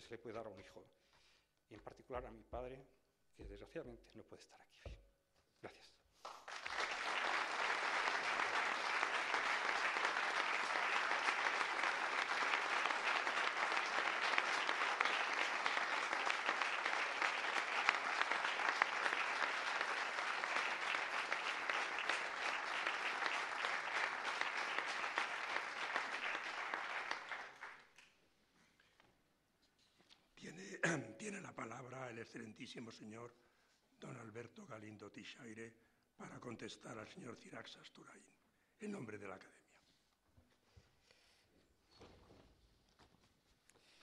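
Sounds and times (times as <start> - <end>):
audience applauding: 6.2 - 28.0.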